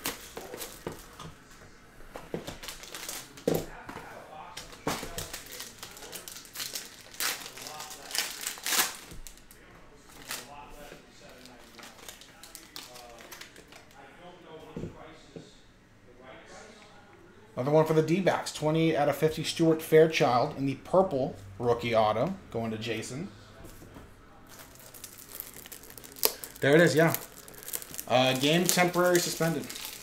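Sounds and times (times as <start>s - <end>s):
plastic wrapping crinkling: 2.4s - 3.4s, 4.7s - 10.6s, 11.2s - 13.8s, 24.5s - 30.0s.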